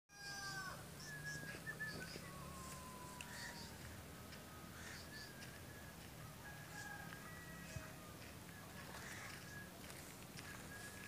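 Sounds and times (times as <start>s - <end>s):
bird whistled notes: 0.1s - 3.9s, 4.7s - 6.0s
birds chirping: 0.1s - 11.0s.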